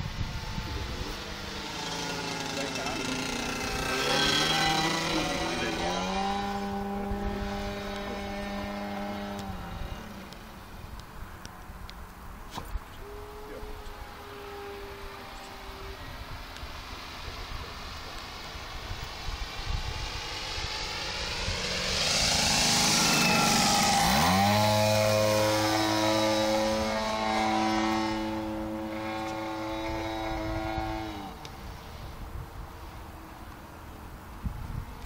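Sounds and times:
model airplane engine and propeller: 0.0s - 35.0s.

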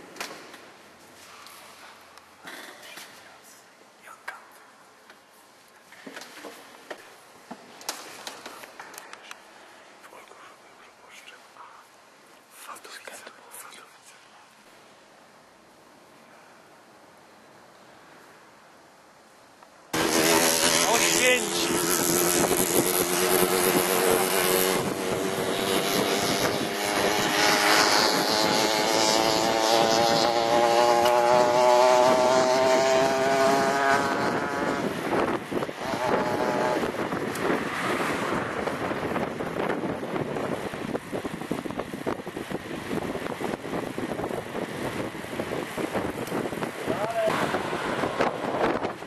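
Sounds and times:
wind and road rush: 16.8s - 49.0s
vehicle engine accelerating: 19.9s - 40.7s.

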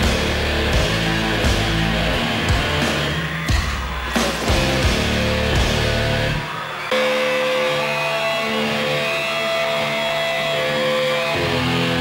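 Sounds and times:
ringing electric guitar chords: 0.0s - 3.6s, 4.5s - 12.0s
live rock band: 0.0s - 12.0s.

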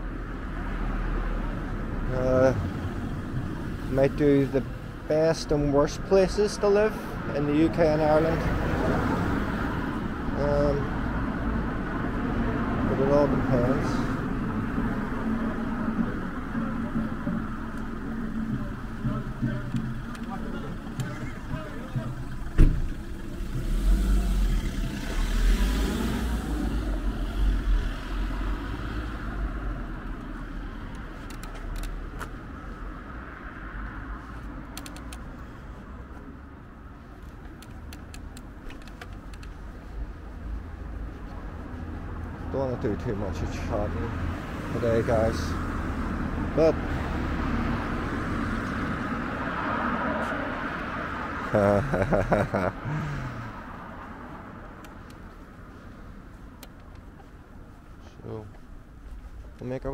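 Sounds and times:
road traffic hum: 0.0s - 59.9s
car driving past: 11.1s - 30.9s.

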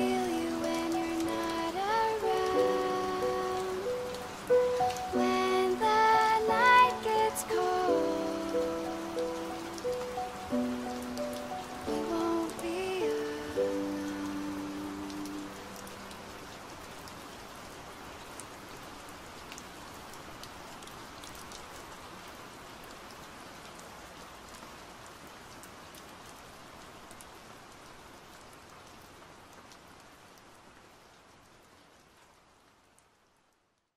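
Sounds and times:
acoustic song: 0.0s - 15.7s
rain on a hard surface: 0.0s - 33.9s.

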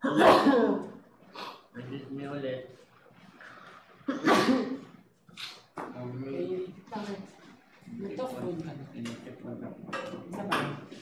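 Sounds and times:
man coughing: 0.0s - 0.9s, 4.1s - 4.8s.

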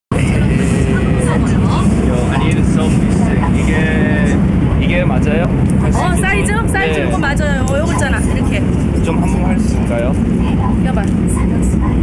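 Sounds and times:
subway train rumble: 0.1s - 12.0s
voices: 0.1s - 12.0s.

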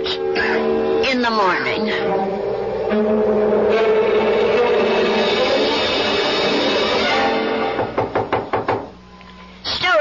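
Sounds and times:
quick knocks on a door: 7.8s - 8.9s.

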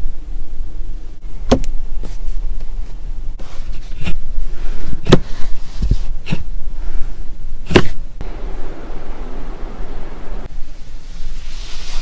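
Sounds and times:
hand rustling on upholstery: 2.0s - 6.5s.

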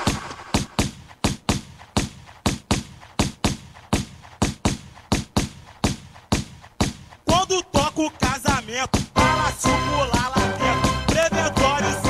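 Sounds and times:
electronic drum beat: 0.0s - 12.0s.

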